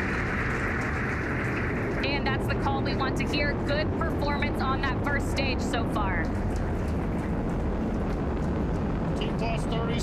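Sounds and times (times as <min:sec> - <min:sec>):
rocket engines firing: 0:00.0 - 0:10.0.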